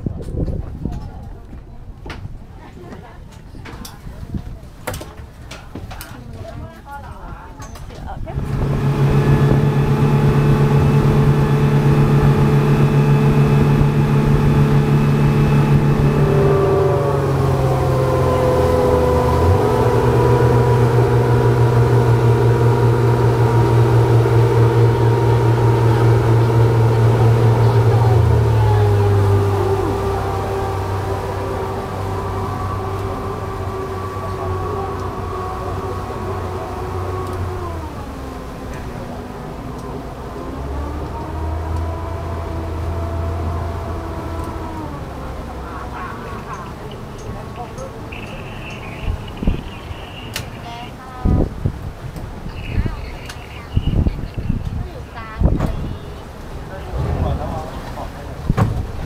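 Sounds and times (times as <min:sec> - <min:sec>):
speedboat engines droning: 0:00.0 - 0:59.0.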